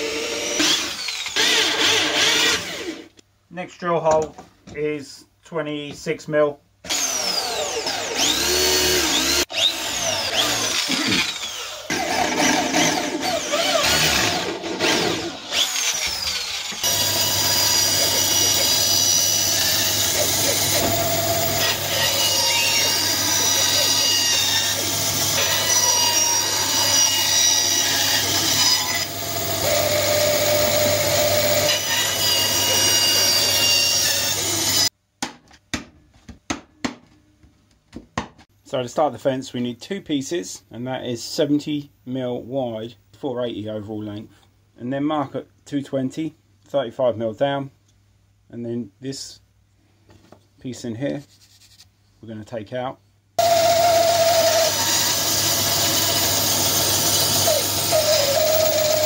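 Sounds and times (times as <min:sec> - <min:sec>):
power drill boring through wood: 0:00.0 - 0:03.1, 0:06.9 - 0:34.9, 0:53.4 - 0:59.0
band saw cutting wood: 0:06.9 - 0:34.9, 0:53.4 - 0:59.0.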